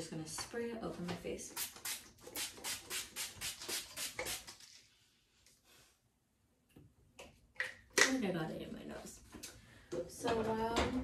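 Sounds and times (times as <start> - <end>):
spray bottle misting: 1.5 - 4.6.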